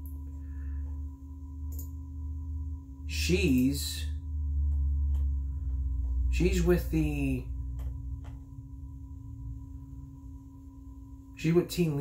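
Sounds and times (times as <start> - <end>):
low droning hum: 0.0 - 12.0.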